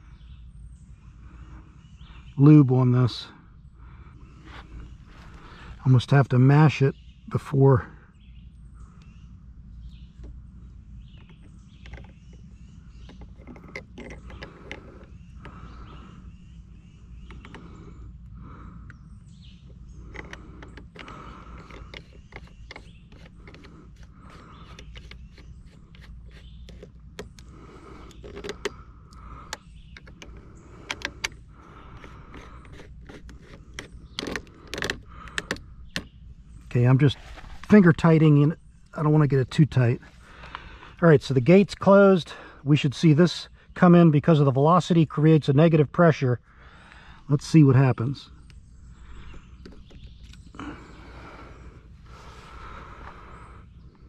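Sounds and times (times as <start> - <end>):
low background rumble: 0.0 - 54.0
plastic plumbing clicks and creaks: 13.1 - 15.6, 20.1 - 28.8, 29.4 - 36.1.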